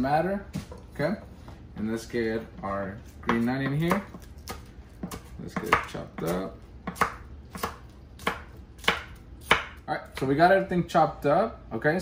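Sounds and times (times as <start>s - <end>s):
knife chopping on wooden board: 3.0s - 10.3s.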